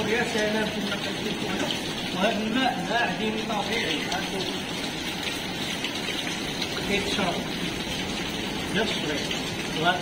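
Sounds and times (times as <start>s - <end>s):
water dripping and trickling: 0.0s - 10.0s.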